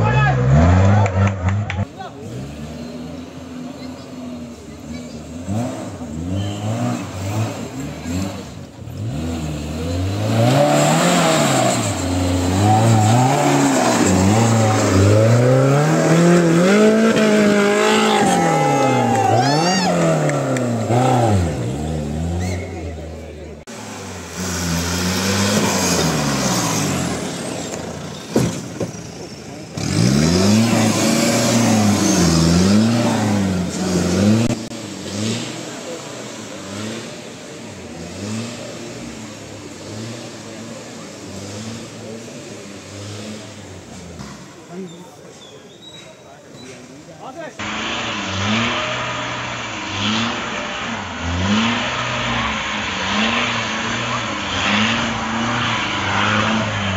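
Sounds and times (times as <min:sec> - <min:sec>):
jeep engine revving: 0:00.0 - 0:44.9, 0:47.4 - 0:56.9.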